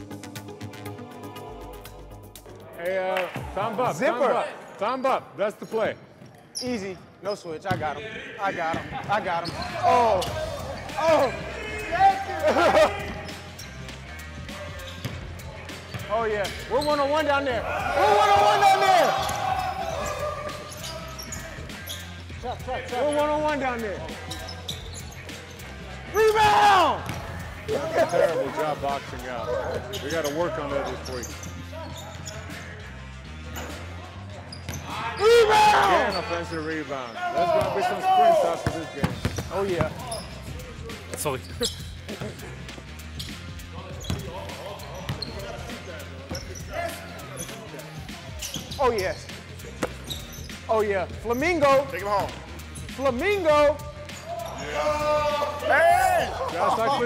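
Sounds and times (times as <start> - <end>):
players calling and shouting: 1.9 - 57.0
voices on court: 3.2 - 42.5, 43.6 - 57.0
basketball bouncing on court: 7.7 - 7.9, 27.0 - 27.4, 38.5 - 40.0.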